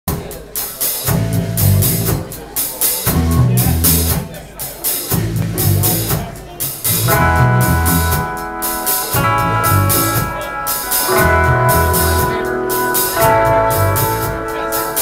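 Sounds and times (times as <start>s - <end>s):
drum kit beat: 0.1s - 15.0s
electric bass riff: 1.1s - 2.2s, 3.1s - 4.2s, 5.1s - 6.2s, 6.8s - 15.0s
electric guitar chords: 6.9s - 15.0s.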